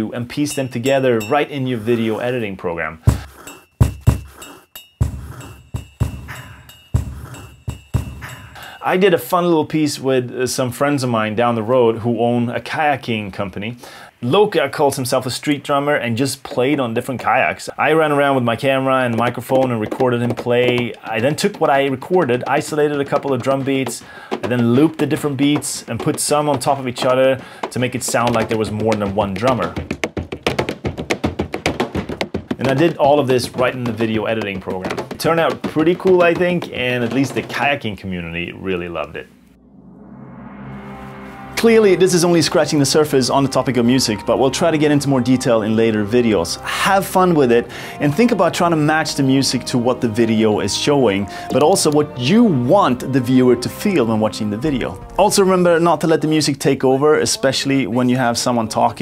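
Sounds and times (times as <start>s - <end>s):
hand drumming on kayak hulls: 3.1s - 4.4s, 18.7s - 37.8s
clinking ring: 3.4s - 8.8s
heavy foot stamp thump: 22.6s - 37.6s.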